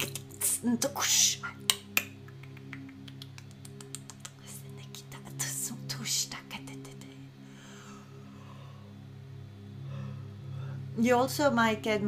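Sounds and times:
low droning music: 0.0 - 12.0.

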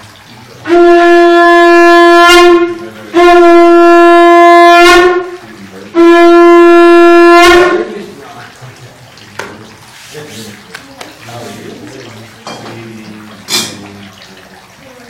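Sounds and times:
conch shell blasts: 0.6 - 8.0.

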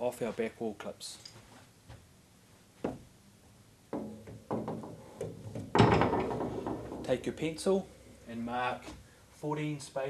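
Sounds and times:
wire shelf knocking against wall: 3.9 - 7.2.

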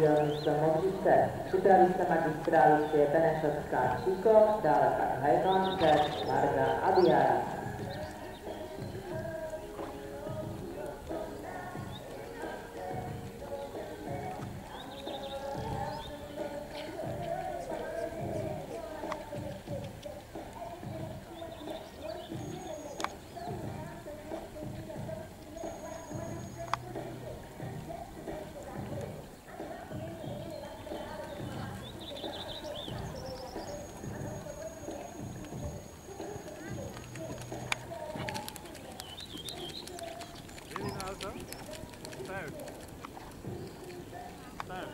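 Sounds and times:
background music: 0.0 - 44.9
horse hoofbeats on sand: 0.0 - 44.9.

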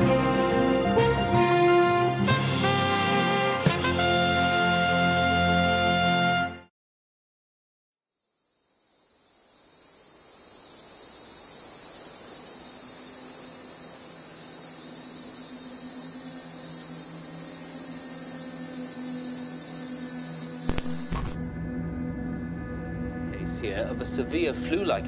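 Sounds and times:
high hiss: 8.2 - 21.5
sharp hits: 20.7 - 21.5.

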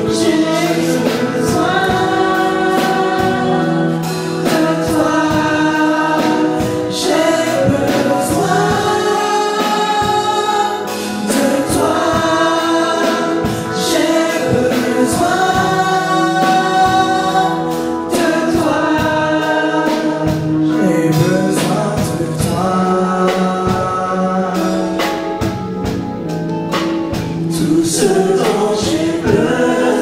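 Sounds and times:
choir singing in harmony: 0.0 - 30.0.

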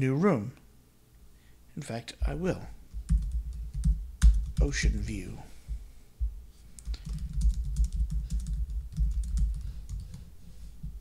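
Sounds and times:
typing on computer keyboard: 3.0 - 4.8, 6.8 - 10.3.

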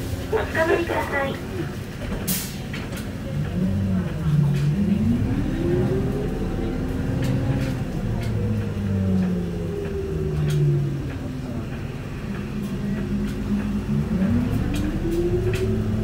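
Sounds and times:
diesel bus engine under load: 0.0 - 16.0.

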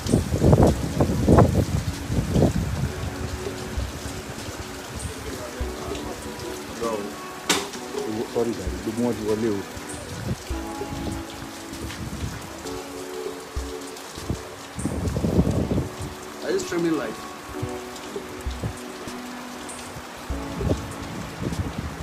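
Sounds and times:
rain on wet concrete: 0.0 - 22.0
faint voices or music: 1.6 - 22.0.

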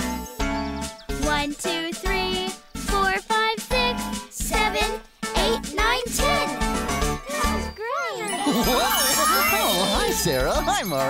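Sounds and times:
light music: 0.0 - 11.0
twinkling magic chimes: 7.9 - 11.0.

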